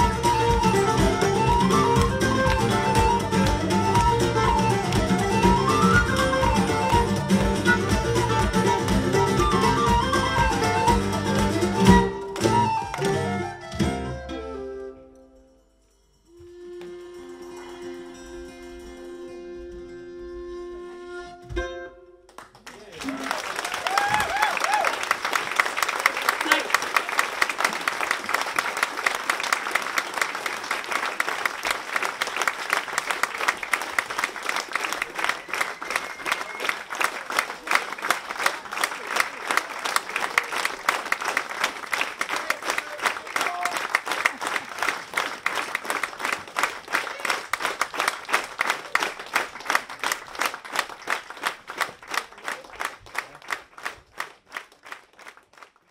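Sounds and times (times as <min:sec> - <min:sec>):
audience applauding: 0:00.0 - 0:13.7, 0:22.3 - 0:55.9.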